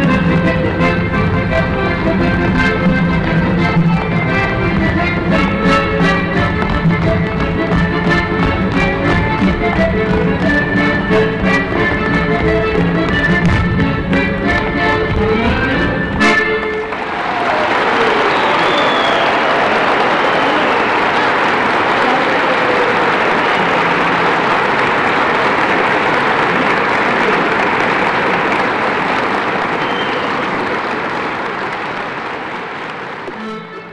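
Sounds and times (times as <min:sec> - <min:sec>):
folk dance music: 0:00.0 - 0:33.9
audience applause: 0:16.6 - 0:33.9.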